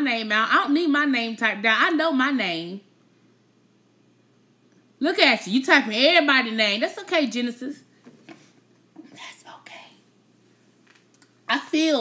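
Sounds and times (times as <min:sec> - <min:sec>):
woman whispering: 0:09.1 - 0:10.1.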